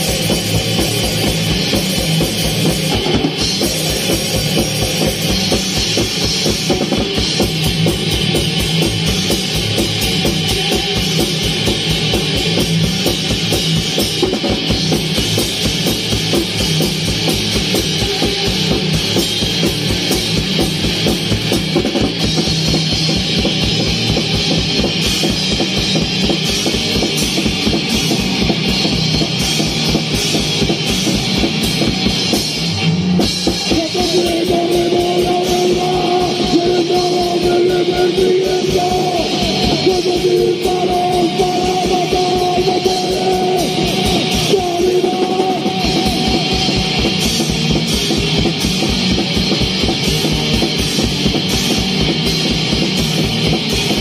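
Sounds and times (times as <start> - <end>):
electric guitar: 0.0 - 54.0
fast driving drum beat: 0.0 - 54.0.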